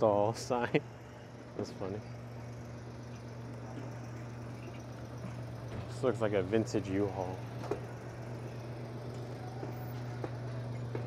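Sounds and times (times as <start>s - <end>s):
open-air background noise: 0.0s - 11.0s
steady low hum: 0.0s - 11.0s.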